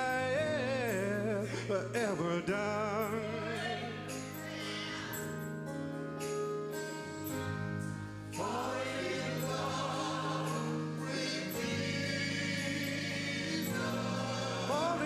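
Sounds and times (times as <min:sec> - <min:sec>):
gospel choir singing: 0:00.0 - 0:05.4, 0:08.3 - 0:15.0
electric keyboard chords: 0:00.0 - 0:15.0.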